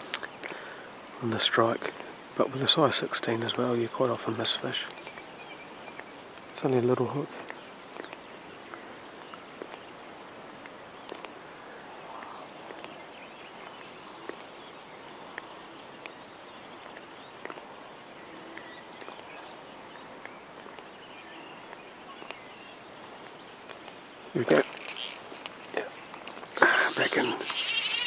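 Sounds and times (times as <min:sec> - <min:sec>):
faint ticks: 0:04.2 - 0:06.6, 0:07.4 - 0:11.4, 0:12.1 - 0:13.0
light wind over water: 0:04.4 - 0:28.0.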